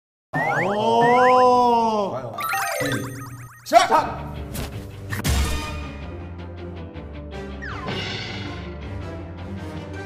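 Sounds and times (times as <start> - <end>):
held electronic tone: 2.4 - 3.8.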